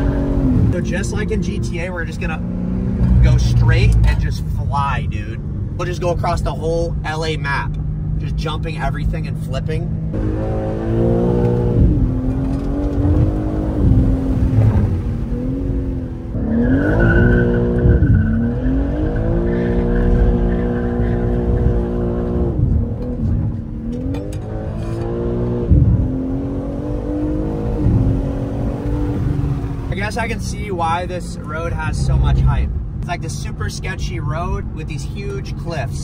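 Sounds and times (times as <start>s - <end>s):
car engine revving: 0.0s - 36.0s.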